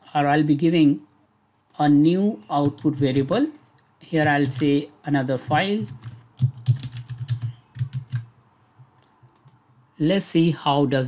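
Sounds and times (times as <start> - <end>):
typing on computer keyboard: 2.6 - 8.3, 9.2 - 9.6.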